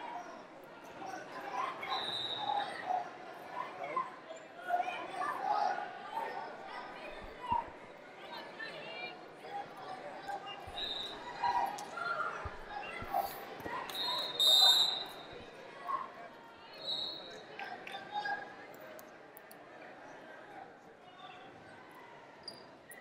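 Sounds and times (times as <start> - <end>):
indistinct voices in a large hall: 0.0 - 23.0
referee whistle blasts: 13.9 - 15.2.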